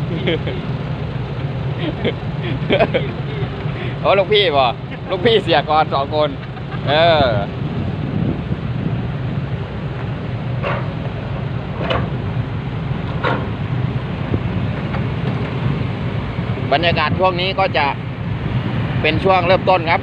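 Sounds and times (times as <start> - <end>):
heavy diesel machinery rumbling: 0.0 - 20.0.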